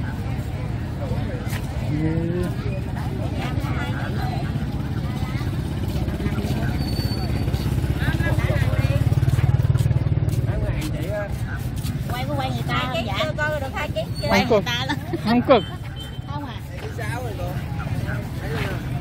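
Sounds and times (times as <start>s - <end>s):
market chatter: 0.0s - 19.0s
motorbike engine running: 3.2s - 14.6s.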